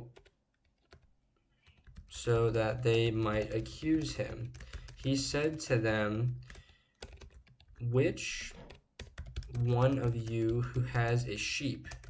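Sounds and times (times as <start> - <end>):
keystrokes on computer keyboard: 0.0 - 7.8, 8.5 - 12.0.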